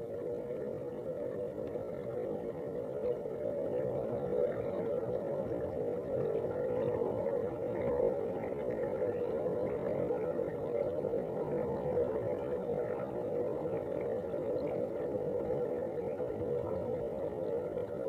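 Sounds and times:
muffled underwater rumble: 0:00.0 - 0:18.0.

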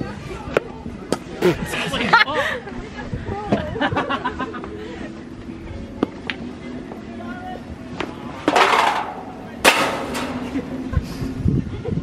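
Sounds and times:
ball rattling against metal obstacle: 0:08.4 - 0:10.7.

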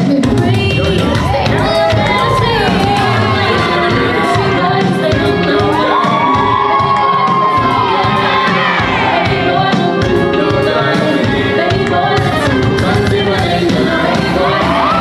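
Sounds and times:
loud dance music: 0:00.0 - 0:15.0
audience cheering and screaming: 0:00.7 - 0:15.0.

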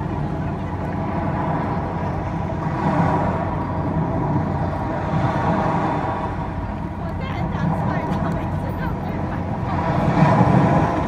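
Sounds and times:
deep steady rumble: 0:00.0 - 0:11.0.

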